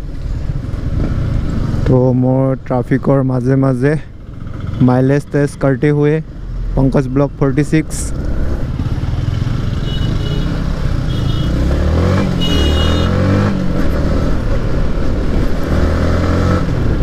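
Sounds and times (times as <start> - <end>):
motorcycle engine running: 4.1 - 6.7, 8.1 - 15.7.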